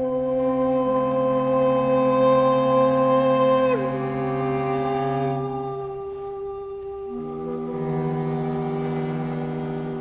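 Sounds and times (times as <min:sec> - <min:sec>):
ensemble holding low chord: 0:00.9 - 0:10.0.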